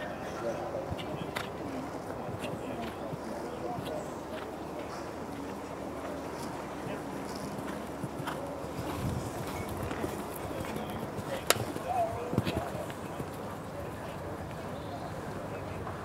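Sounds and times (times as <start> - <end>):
murmur of spectator voices: 0.0 - 16.0
horse hoofbeats on turf: 2.2 - 13.6.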